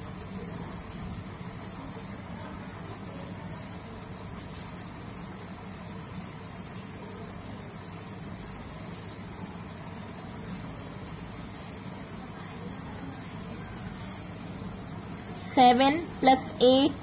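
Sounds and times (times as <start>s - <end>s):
constant hiss: 0.0s - 17.0s.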